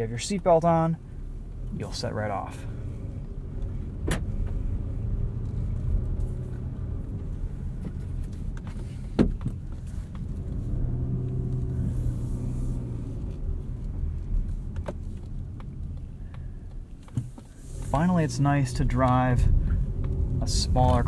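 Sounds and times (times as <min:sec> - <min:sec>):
car engine rumble from cabin: 0:00.0 - 0:21.0.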